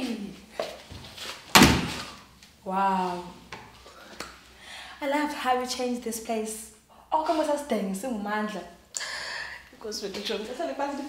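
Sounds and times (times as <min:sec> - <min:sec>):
door banging shut: 0:01.5 - 0:02.2.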